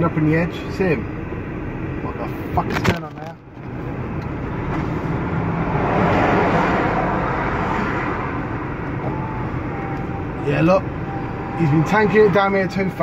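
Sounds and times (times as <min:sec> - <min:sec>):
vehicle engine and tyre noise: 0:00.0 - 0:13.0
lorry passing: 0:04.2 - 0:13.0.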